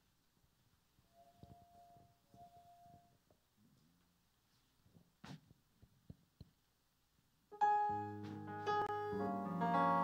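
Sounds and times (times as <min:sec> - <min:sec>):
soft steady tone: 0:00.0 - 0:04.1.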